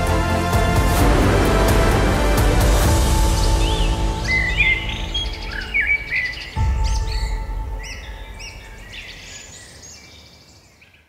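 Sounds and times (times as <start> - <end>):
music with held chords: 0.0 - 9.0
birds chirping: 3.0 - 11.0.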